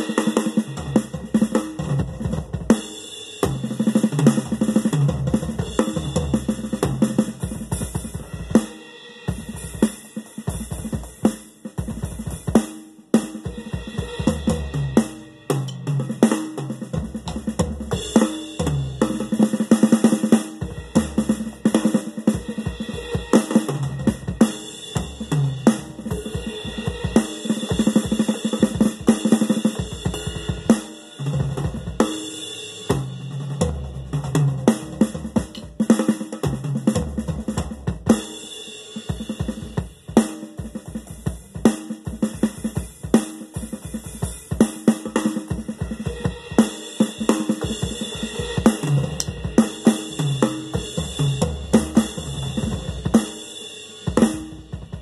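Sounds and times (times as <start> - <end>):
electronic drum kit beat: 0.0 - 55.0.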